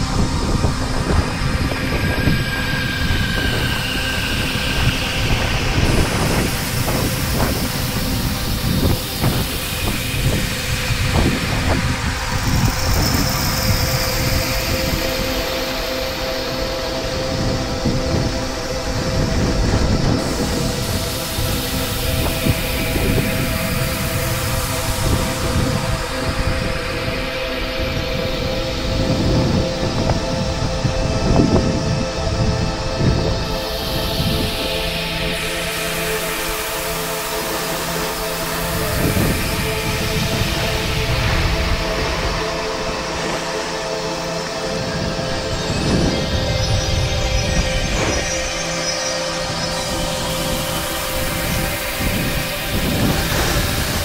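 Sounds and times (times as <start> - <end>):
wind on microphone: 0.0 - 54.0.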